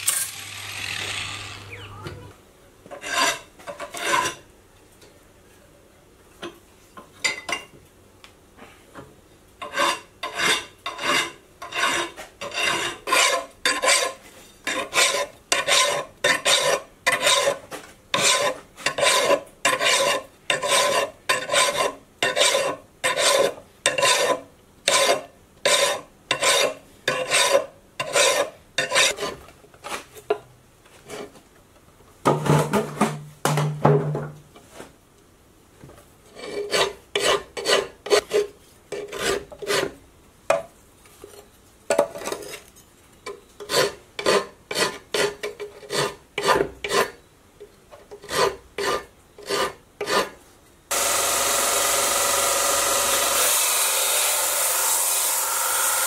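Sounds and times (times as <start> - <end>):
belt sander grinding: 0.0 - 1.8, 50.9 - 56.0
file scraping on steel: 2.9 - 4.4, 9.6 - 29.4, 36.3 - 40.0, 43.6 - 47.2, 48.0 - 56.0.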